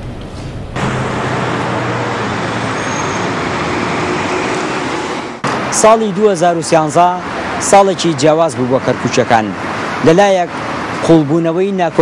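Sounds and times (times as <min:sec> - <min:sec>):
low engine hum: 0:00.0 - 0:02.8
road traffic passing cars: 0:00.0 - 0:12.0.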